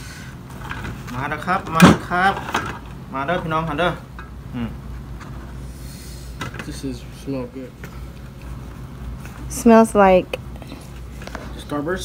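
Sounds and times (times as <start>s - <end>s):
low steady hum: 0.0s - 12.0s
murmured vocal sound: 4.5s - 4.8s.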